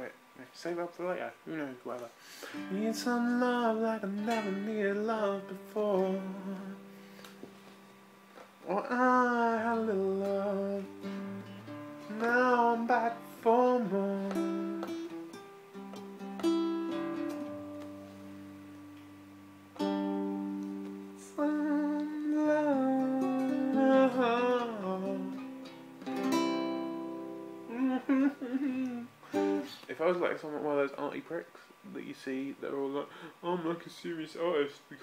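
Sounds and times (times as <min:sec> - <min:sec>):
acoustic guitar strummed chords: 0:02.4 - 0:29.8
man wordless singing: 0:02.6 - 0:06.9, 0:08.6 - 0:11.1, 0:12.1 - 0:15.1, 0:21.2 - 0:25.5, 0:27.7 - 0:29.7.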